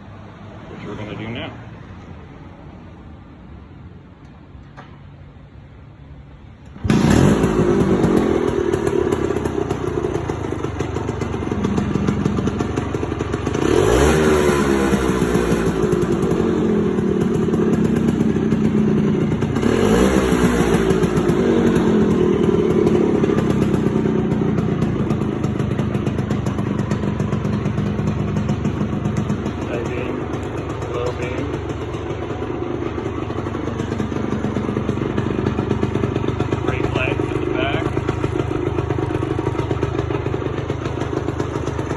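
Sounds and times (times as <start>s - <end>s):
scooter engine revving and idling: 6.4s - 41.9s.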